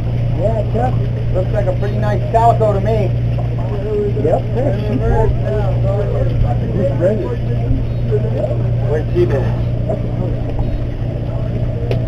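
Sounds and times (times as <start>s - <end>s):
boat engine droning: 0.0s - 12.0s
people talking: 0.4s - 11.6s.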